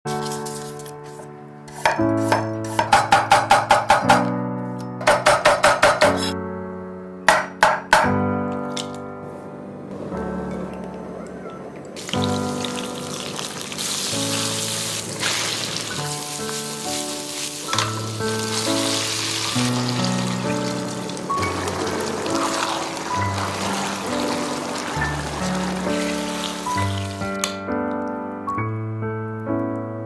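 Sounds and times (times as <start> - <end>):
soft background music: 0.1 - 30.0
hot oil sizzling in a pan: 12.0 - 27.4.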